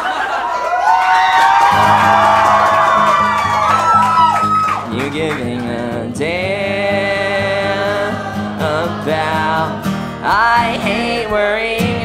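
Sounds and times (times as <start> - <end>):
acoustic guitar strumming: 1.7 - 12.0.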